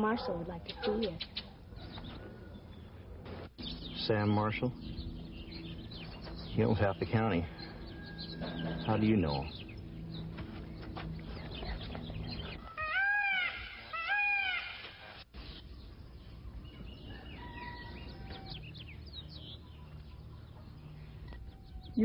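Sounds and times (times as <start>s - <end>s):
farm animal calls: 11.4s - 15.2s.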